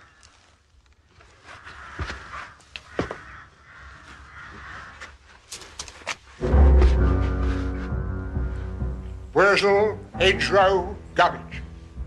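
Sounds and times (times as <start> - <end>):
crow cawing: 0.0 - 0.6, 1.4 - 5.4.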